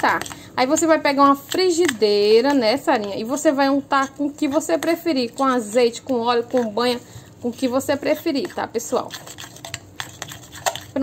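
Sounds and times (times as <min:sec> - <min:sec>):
spoon clinking and scraping glass bowl: 0:07.6 - 0:11.0.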